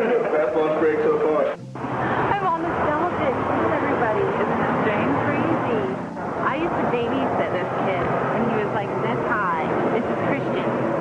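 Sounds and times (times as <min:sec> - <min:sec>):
people talking indistinctly: 0:00.0 - 0:11.0
steady background noise: 0:00.0 - 0:11.0.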